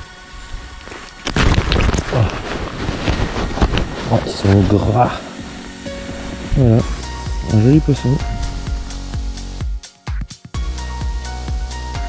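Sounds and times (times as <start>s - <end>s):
handling noise on microphone: 0.8s - 5.0s.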